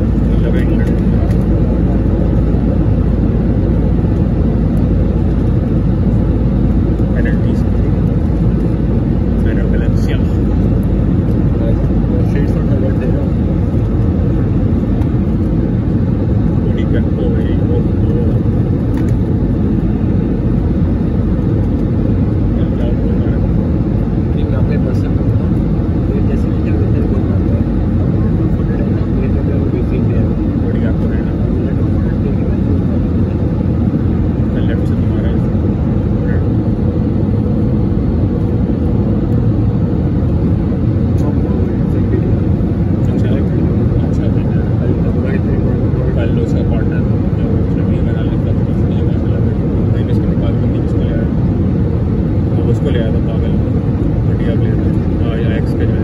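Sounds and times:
jet engine and airflow roar: 0.0s - 56.0s.

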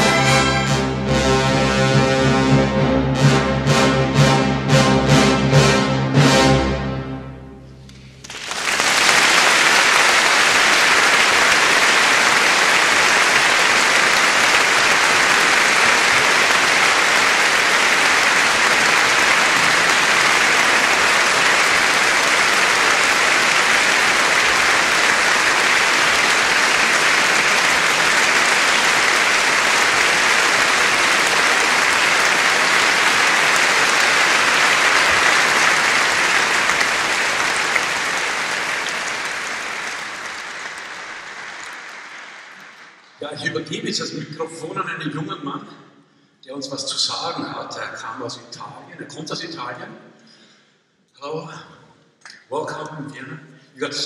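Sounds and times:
audience applauding: 0.0s - 0.8s, 7.9s - 43.2s.

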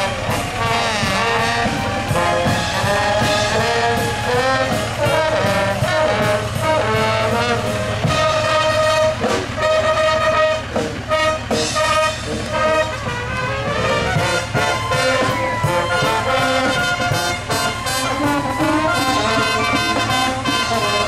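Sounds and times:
brass band playing: 0.0s - 21.0s.

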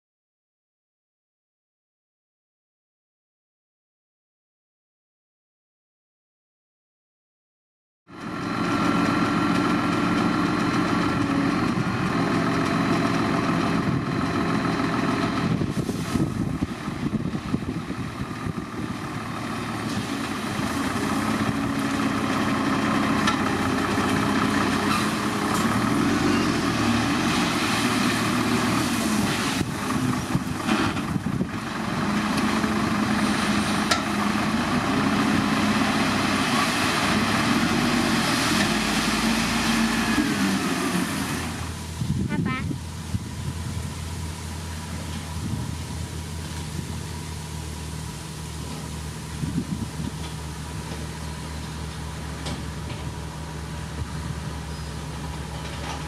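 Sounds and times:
diesel truck engine running: 8.1s - 56.0s.

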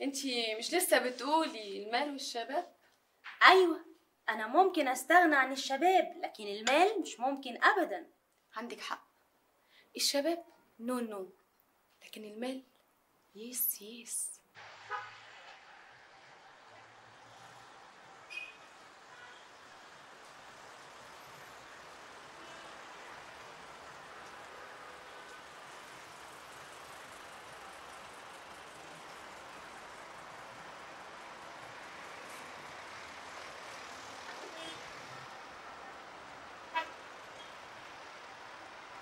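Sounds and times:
city traffic: 0.0s - 8.7s, 12.9s - 39.0s
car horn toot: 14.9s - 15.2s, 18.3s - 19.4s.

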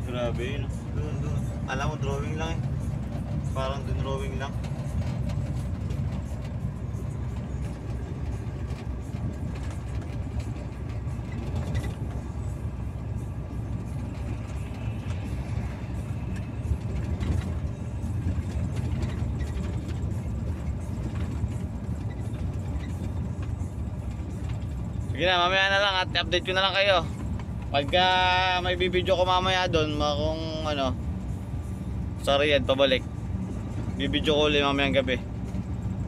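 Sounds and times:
truck engine rumble: 0.0s - 36.0s
tyres on the road: 0.0s - 36.0s.

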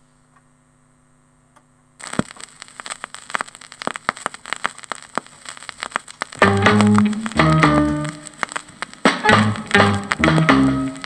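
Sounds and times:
faint mains hum: 0.0s - 11.0s
vinyl record crackle and pops: 1.6s - 11.0s.

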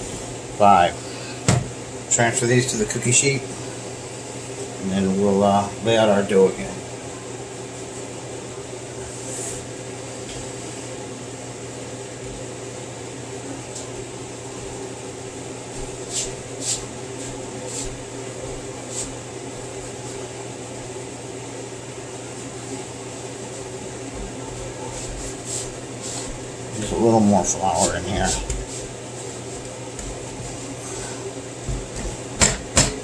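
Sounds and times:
steady mechanical hum: 0.0s - 33.0s
dough scraping on wooden board: 27.8s - 28.9s.

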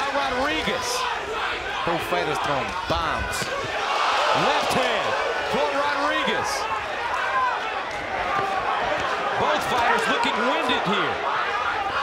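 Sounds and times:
murmur of spectators: 0.0s - 12.0s
voices shouting: 0.0s - 12.0s.

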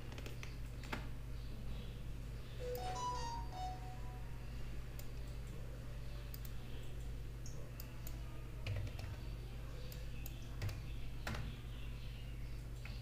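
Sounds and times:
keyboard and mouse clicks: 0.0s - 1.1s, 6.3s - 9.2s, 9.9s - 11.4s
low electrical hum: 0.0s - 13.0s.

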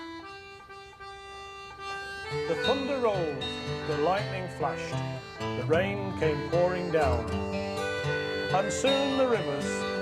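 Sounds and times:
accordion playing folk song: 0.0s - 10.0s
low accompanying notes: 0.0s - 10.0s
person singing: 8.4s - 10.0s.

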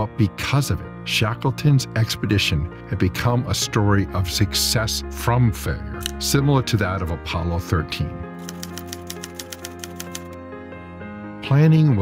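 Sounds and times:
background music with held chords: 0.0s - 12.0s
typewriter key clicks: 8.4s - 10.4s.

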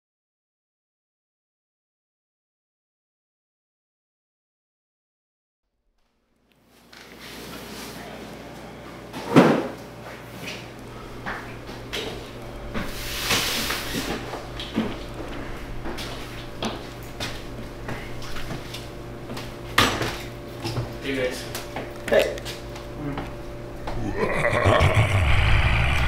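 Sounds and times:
steady low hum: 10.7s - 26.0s
brief rushing noise: 24.8s - 26.0s.

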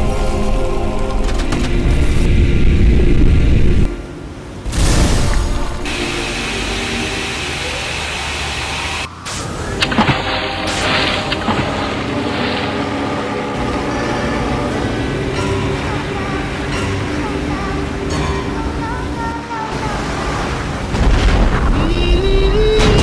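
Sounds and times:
steady rushing drone: 0.0s - 22.9s
background music: 0.0s - 23.0s
heavy explosion rumble: 20.9s - 23.0s.

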